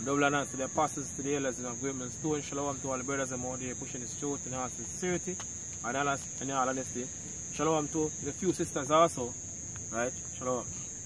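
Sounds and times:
man speaking: 0:00.0 - 0:10.9
crickets chirping: 0:00.0 - 0:11.0.

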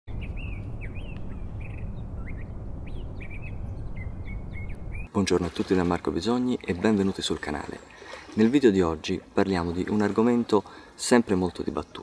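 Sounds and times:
small birds chirping: 0:00.1 - 0:05.2
low outdoor rumble: 0:00.2 - 0:05.1.

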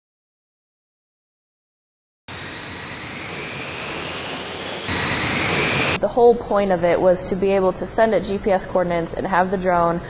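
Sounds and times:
drone propellers whirring: 0:02.3 - 0:06.0.

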